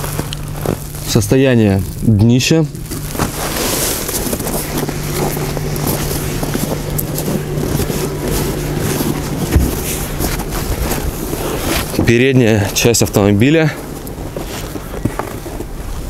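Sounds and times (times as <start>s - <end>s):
steady low hum: 0.0s - 16.0s
wind buffeting microphone: 2.7s - 16.0s
footsteps in snow: 2.8s - 16.0s.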